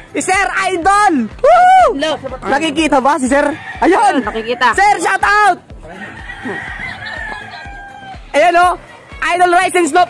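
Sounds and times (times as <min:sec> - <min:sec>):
rooster crowing: 0:03.2 - 0:05.1, 0:05.9 - 0:08.4.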